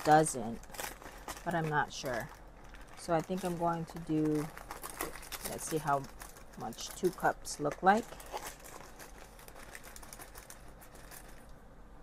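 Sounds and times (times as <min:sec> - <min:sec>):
paper bag rustling and crinkling: 0:00.0 - 0:11.5.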